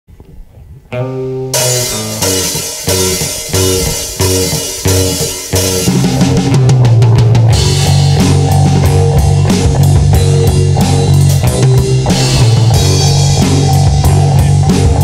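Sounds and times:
rock band playing: 1.0s - 15.0s
cymbal crashes: 1.6s - 6.7s, 12.0s - 14.3s.

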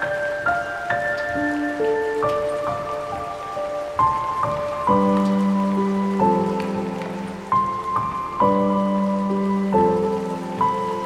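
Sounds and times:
rain hissing: 0.0s - 11.0s
slow solo piano: 0.0s - 11.0s.

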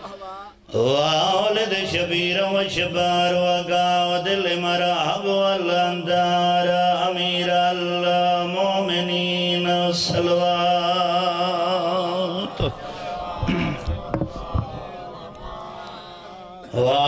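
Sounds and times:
man chanting through microphone: 0.0s - 17.0s.

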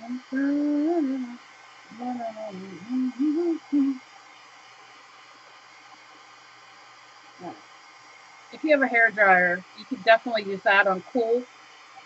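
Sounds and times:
woman humming: 0.0s - 4.0s, 7.4s - 7.6s.

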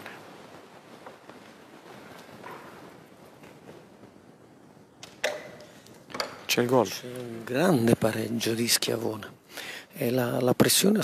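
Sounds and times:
faint hall background: 0.0s - 11.0s.

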